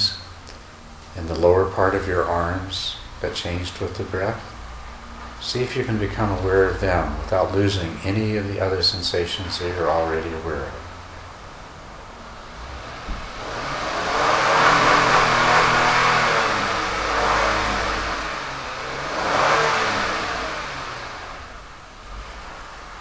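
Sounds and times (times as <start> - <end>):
car driving past: 9.7 - 23.0.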